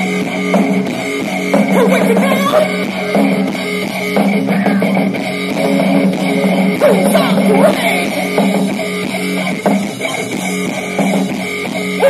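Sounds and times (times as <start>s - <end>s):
bass notes: 0.0s - 12.0s
drum kit: 0.0s - 12.0s.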